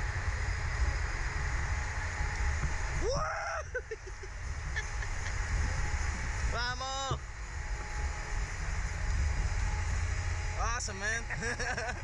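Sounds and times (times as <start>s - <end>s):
wind buffeting microphone: 0.0s - 10.6s.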